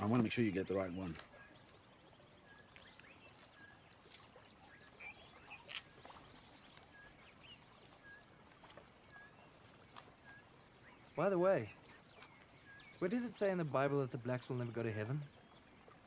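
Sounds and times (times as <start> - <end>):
bird chirping: 0.0 - 16.0.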